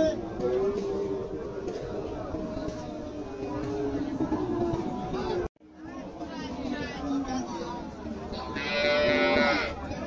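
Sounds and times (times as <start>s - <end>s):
crowd chatter: 0.0s - 10.0s
cattle mooing: 8.6s - 9.7s.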